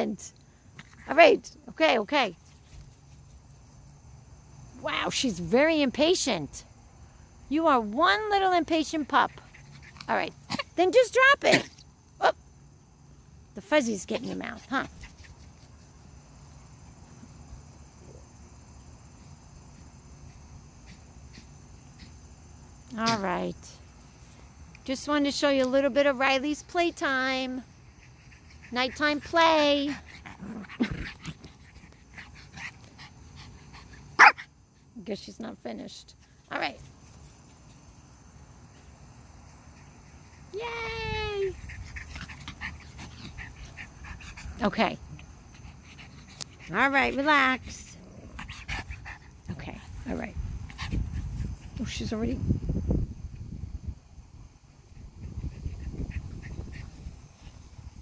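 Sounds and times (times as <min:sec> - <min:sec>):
crickets chirping: 0:00.0 - 0:58.0
low wind rumble: 0:47.6 - 0:58.0.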